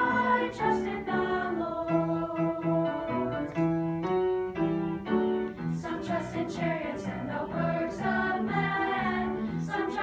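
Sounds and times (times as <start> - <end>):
choir singing: 0.0 - 3.6, 5.7 - 10.0
piano accompaniment: 0.0 - 10.0.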